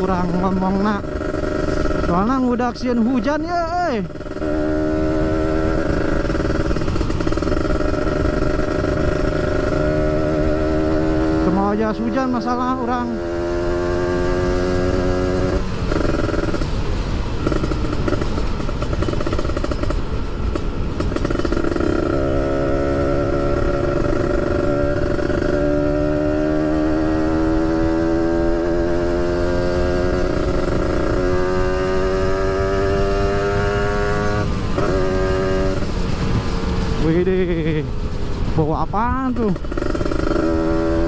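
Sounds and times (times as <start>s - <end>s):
motorcycle engine revving: 0.0s - 41.0s
wind and road noise: 0.0s - 41.0s.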